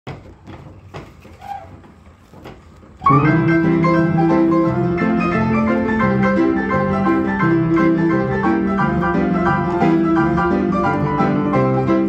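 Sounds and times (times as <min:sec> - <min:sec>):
player piano mechanism knocking: 0:00.1 - 0:12.0.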